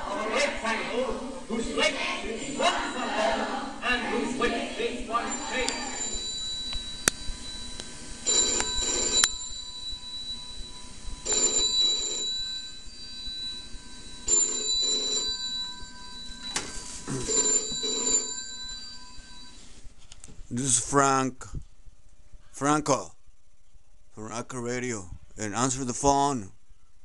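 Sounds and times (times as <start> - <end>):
telephone ringing: 5.1 - 19.8.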